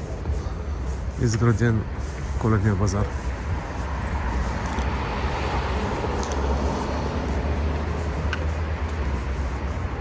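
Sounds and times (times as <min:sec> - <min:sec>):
road traffic rumble: 0:00.0 - 0:10.0
tyre hiss on wet road: 0:00.0 - 0:10.0.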